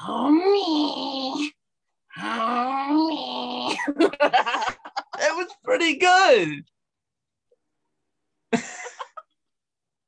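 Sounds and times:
person making wordless vocal sounds: 0:00.0 - 0:03.9.

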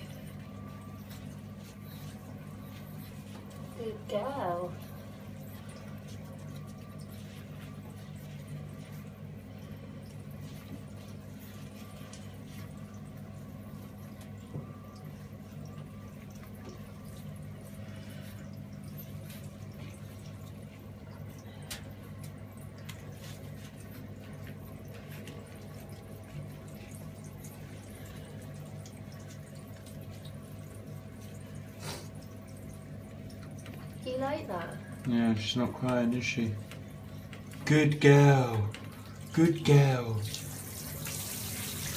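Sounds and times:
shower water running: 0:00.0 - 0:41.9
water drips and splashes: 0:00.0 - 0:41.9.

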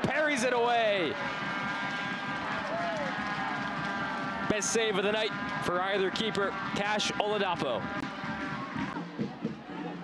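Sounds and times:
murmur of crowd and players: 0:00.0 - 0:10.0.

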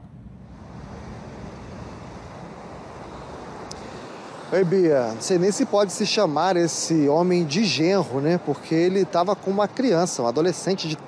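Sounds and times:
traffic rumble: 0:00.0 - 0:11.0
wind hiss: 0:00.0 - 0:11.0.

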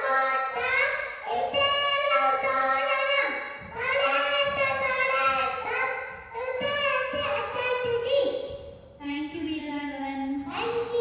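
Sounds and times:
boy chanting: 0:00.0 - 0:08.3.

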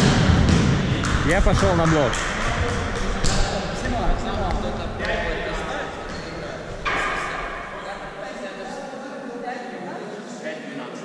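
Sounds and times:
volleyball bouncing on gym floor: 0:00.0 - 0:08.3
players' voices echoing: 0:00.0 - 0:11.0.

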